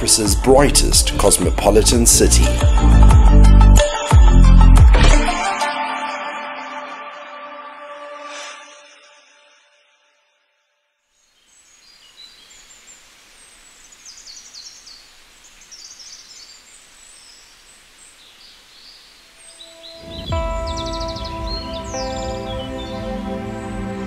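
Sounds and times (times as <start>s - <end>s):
loud music with sustained chords: 0.0s - 8.4s, 19.6s - 24.0s
outdoor hiss: 11.2s - 24.0s
small birds chirping: 11.2s - 24.0s.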